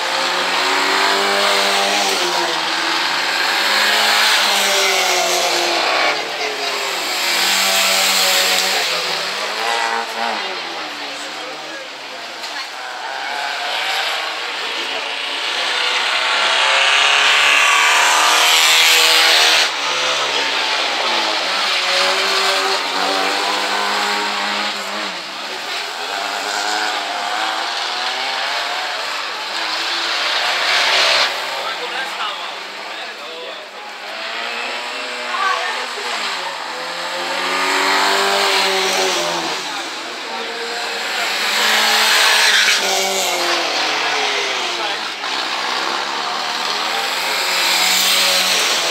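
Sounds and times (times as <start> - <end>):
rally car engines revving: 0.0 - 48.9.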